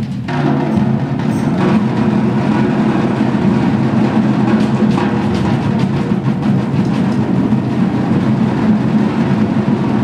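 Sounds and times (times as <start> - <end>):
rumble of drums: 0.0 - 10.0.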